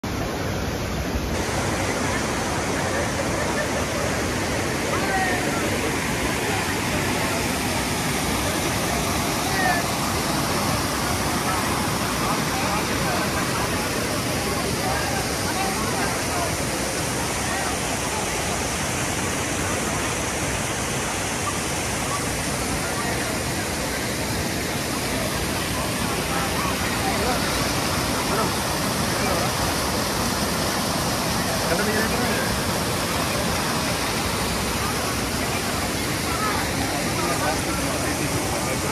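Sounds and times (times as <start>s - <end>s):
river running over rocks: 0.0s - 38.9s
small waterfall rushing: 0.0s - 38.9s.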